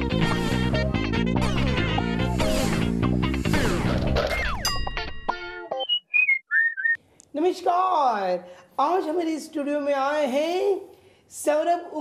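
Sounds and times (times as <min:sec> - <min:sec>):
whistled descending phrase: 0:05.7 - 0:07.0.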